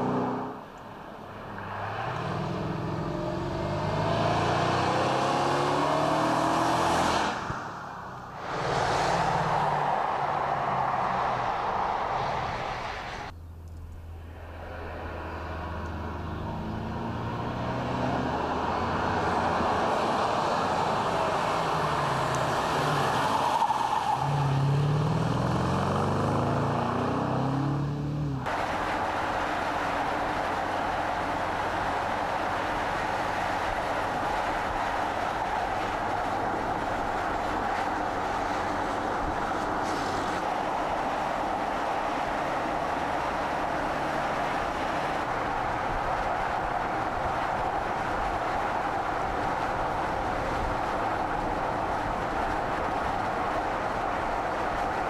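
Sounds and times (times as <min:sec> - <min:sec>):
tyre and road noise at speed: 0:00.0 - 0:55.0
car passing by: 0:01.2 - 0:13.3, 0:14.1 - 0:55.0.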